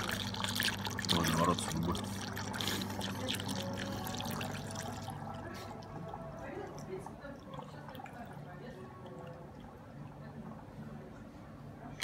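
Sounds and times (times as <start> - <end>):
liquid pouring through funnel: 0.0 - 11.2.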